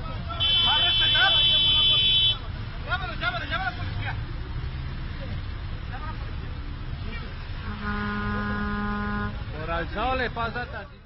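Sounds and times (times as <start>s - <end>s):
low traffic rumble: 0.0s - 11.0s
vehicle horn blast: 0.4s - 2.4s, 7.6s - 9.5s.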